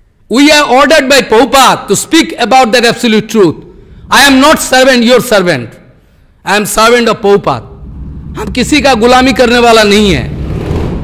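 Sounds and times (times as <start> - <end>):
man speaking into a microphone: 0.3 - 10.4
low steady rumble: 7.4 - 11.0.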